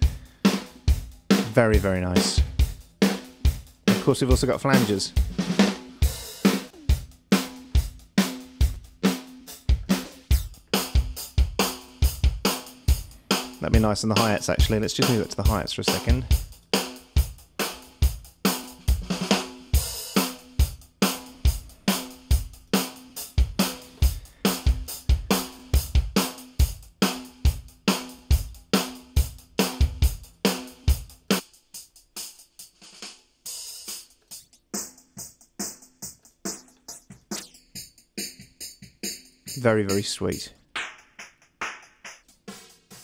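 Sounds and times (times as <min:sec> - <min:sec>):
kick and snare drums: 0:00.0 - 0:31.6, 0:32.4 - 0:43.0.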